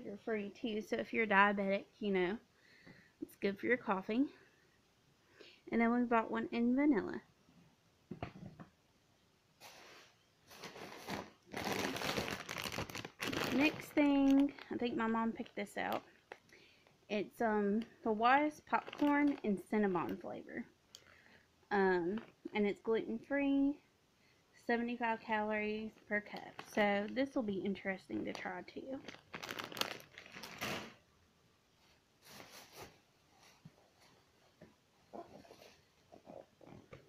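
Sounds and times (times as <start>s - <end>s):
plastic bag crinkling: 10.5s - 16.3s, 18.6s - 20.2s, 22.1s - 22.5s, 25.9s - 27.4s, 28.2s - 31.0s.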